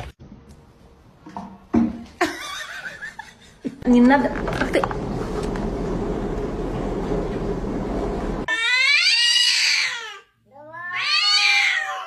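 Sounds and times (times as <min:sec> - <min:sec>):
cat yowling: 0:08.5 - 0:12.0.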